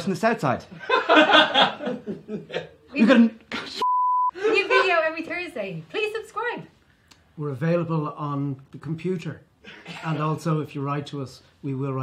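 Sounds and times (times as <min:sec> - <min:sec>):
electronic censor bleep: 0:03.8 - 0:04.4.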